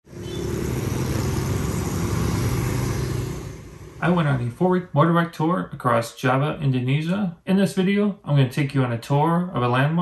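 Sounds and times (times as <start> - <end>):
traffic noise: 0.0 - 4.7
motor scooter engine passing: 0.1 - 4.4.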